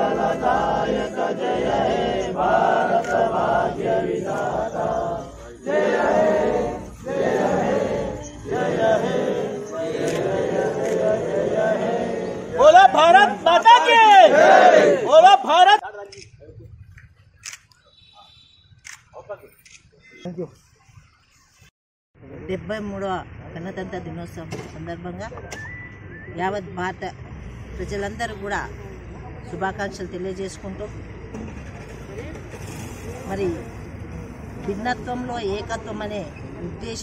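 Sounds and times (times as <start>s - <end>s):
group shouting a slogan: 0.0s - 15.8s.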